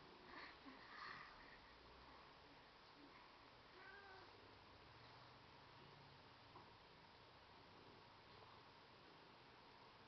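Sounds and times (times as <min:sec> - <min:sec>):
cat meowing faintly: 0:03.7 - 0:04.4.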